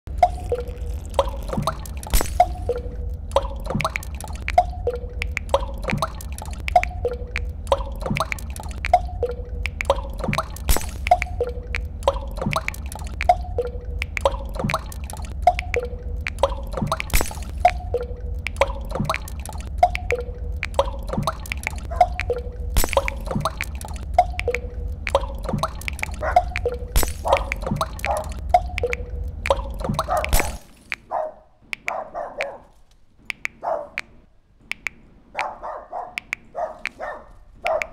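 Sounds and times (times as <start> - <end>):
low hum: 0.1 - 30.7
small ticks and clicks: 0.1 - 31.1, 34.7 - 35.6, 36.2 - 37.9
water drops plinking: 0.1 - 31.1.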